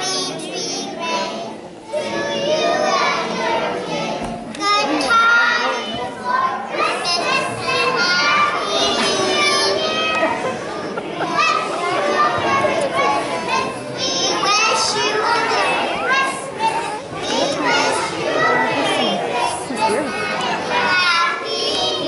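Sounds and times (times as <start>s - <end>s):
children talking and calling out: 0.0s - 22.0s.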